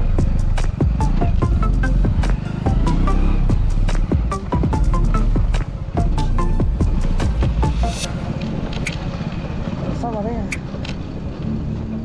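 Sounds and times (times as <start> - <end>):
motorcycle engine running: 0.0 - 12.0
sharp ticks and rattles: 3.6 - 11.5.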